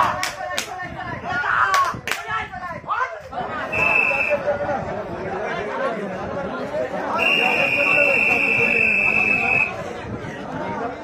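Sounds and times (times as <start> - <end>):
crowd chatter and shouting: 0.0 - 11.0
referee's whistle long blast: 3.7 - 4.4, 7.2 - 9.7.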